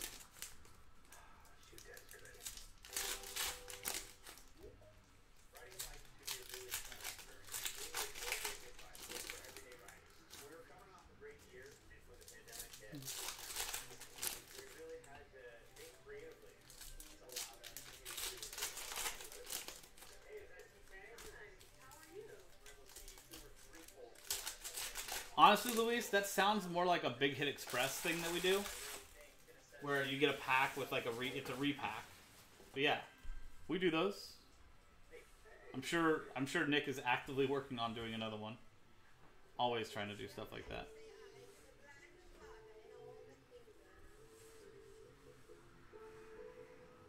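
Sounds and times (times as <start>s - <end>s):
foil wrappers crinkling and tearing: 0.0s - 4.6s, 5.5s - 26.8s, 27.4s - 32.1s
cards shuffled in hands: 22.8s - 26.2s, 27.6s - 29.2s.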